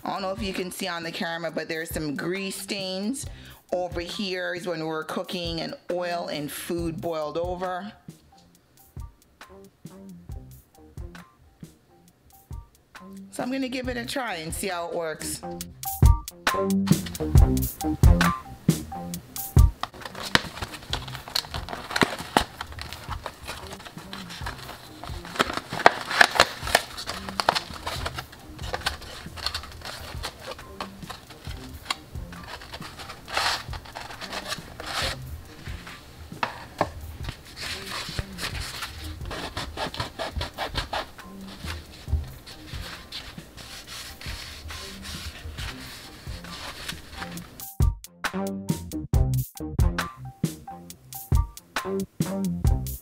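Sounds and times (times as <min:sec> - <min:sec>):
music playing: 0:06.8 - 0:53.0
cardboard crinkling and rubbing: 0:19.8 - 0:47.7.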